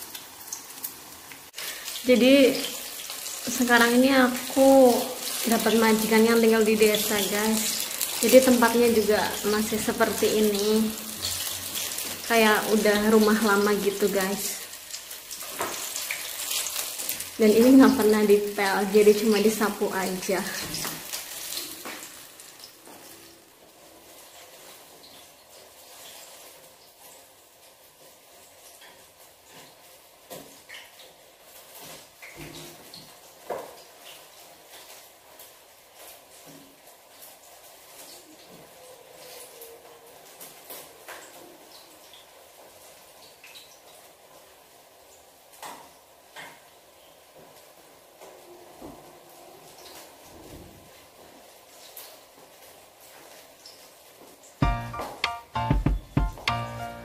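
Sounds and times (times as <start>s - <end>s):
oil sizzling: 0.0s - 48.2s, 49.7s - 57.0s.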